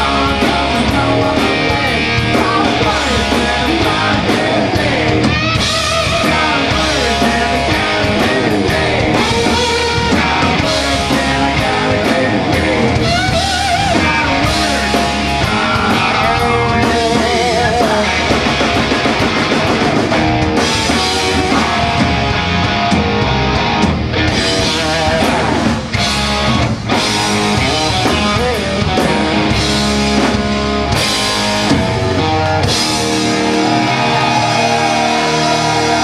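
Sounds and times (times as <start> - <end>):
bass: 0.0 - 36.0
drums: 0.0 - 36.0
electric guitars: 0.0 - 36.0.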